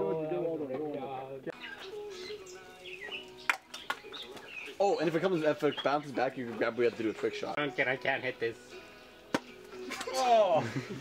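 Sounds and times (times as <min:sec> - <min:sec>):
background music: 0:00.0 - 0:11.0
man exclaiming: 0:10.0 - 0:10.8.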